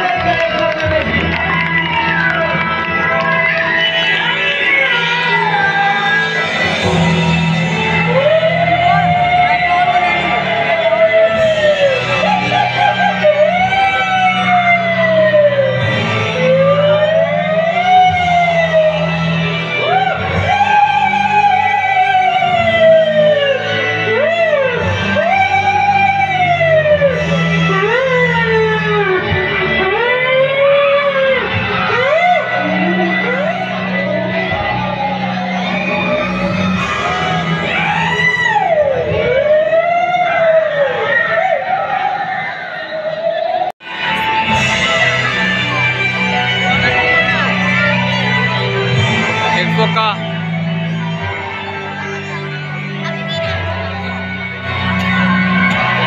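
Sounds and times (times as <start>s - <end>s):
siren-like wailing tone: 0.0s - 56.0s
low musical drone: 43.8s - 56.0s.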